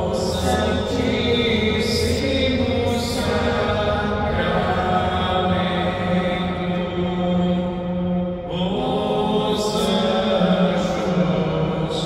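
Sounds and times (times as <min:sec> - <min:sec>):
slow church music: 0:00.0 - 0:12.0.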